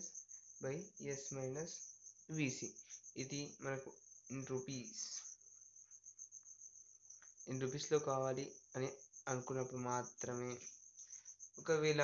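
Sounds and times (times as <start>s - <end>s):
cricket trilling: 0.0s - 12.0s.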